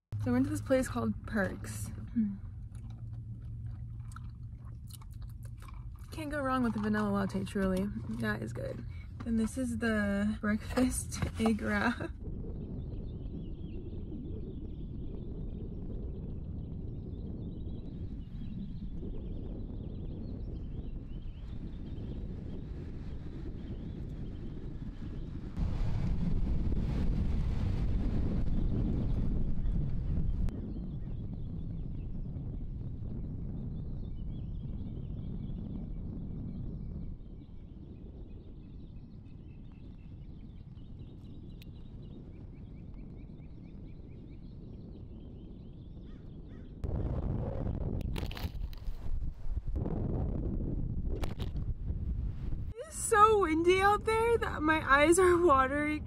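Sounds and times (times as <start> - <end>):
wind buffeting microphone: 0.1 - 56.0.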